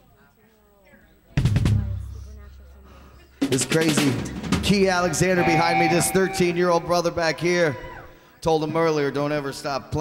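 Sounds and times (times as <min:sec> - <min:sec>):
drum roll: 0:01.4 - 0:02.1, 0:03.4 - 0:07.2
low ringing note: 0:05.0 - 0:07.2.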